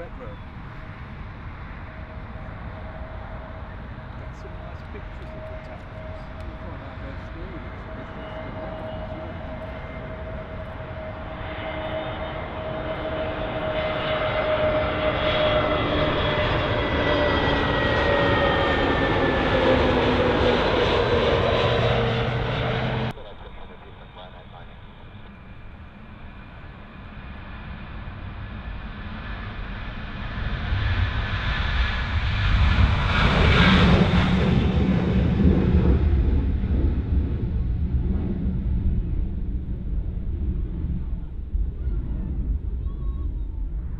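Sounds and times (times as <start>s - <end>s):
jet engine whine: 0.0s - 43.9s
jet engines roaring at takeoff: 0.0s - 43.9s.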